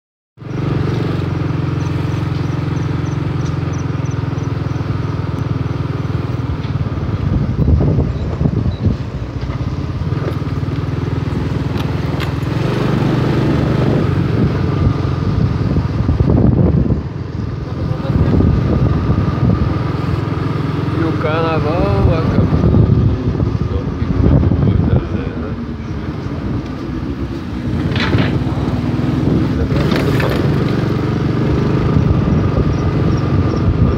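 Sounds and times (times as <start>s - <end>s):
road and wind noise: 0.4s - 33.9s
vehicle engine running: 0.4s - 33.9s
wind buffeting microphone: 0.7s - 33.9s.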